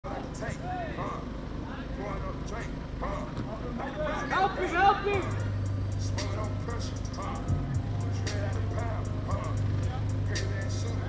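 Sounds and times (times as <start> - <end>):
distant shouts and chatter: 0.1 - 11.0
low background rumble: 0.1 - 11.0.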